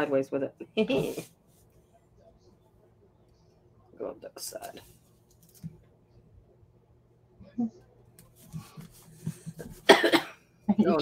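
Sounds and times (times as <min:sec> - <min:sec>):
person coughing: 0:09.8 - 0:10.4.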